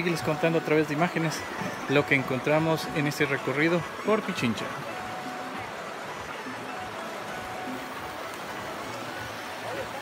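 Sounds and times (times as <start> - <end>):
river flowing over rocks: 0.0 - 10.0.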